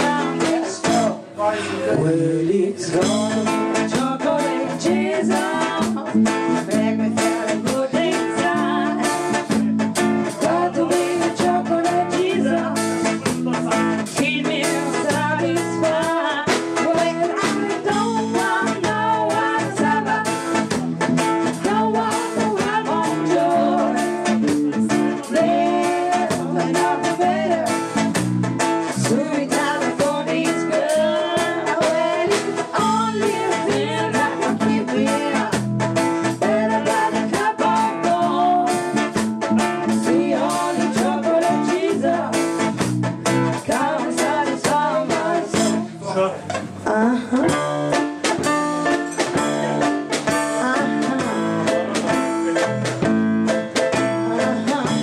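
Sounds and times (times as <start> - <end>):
woman singing into microphone: 0.0 - 28.1, 28.8 - 46.0, 46.8 - 48.6, 49.2 - 53.1, 53.9 - 55.0
drum kit: 0.0 - 55.0
electric bass: 0.0 - 55.0
guitar: 0.0 - 55.0.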